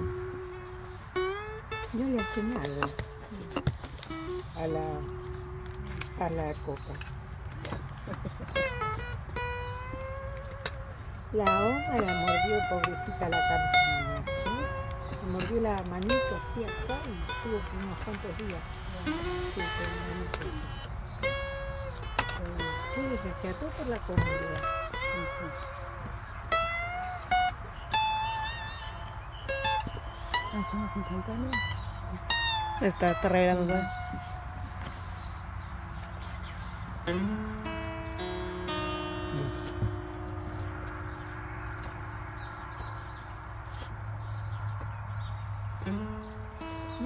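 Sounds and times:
fingerpicked acoustic guitar: 0:00.0 - 0:47.0.

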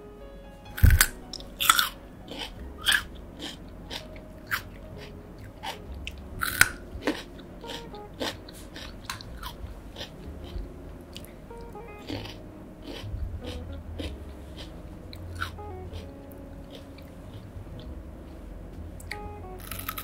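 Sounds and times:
quiet chewing: 0:00.8 - 0:17.5.

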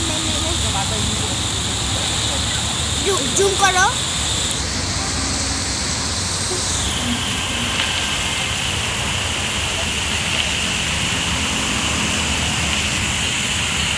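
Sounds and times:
fountain water rushing: 0:00.0 - 0:13.9
thin high tone: 0:03.0 - 0:09.9.

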